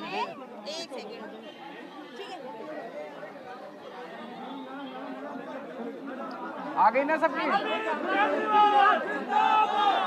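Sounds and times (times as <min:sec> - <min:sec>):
crowd chatter: 0:00.0 - 0:10.0.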